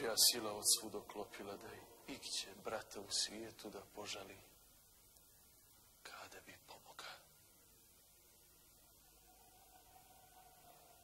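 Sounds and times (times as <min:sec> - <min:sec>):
man whispering: 0:00.0 - 0:04.6, 0:06.0 - 0:07.4.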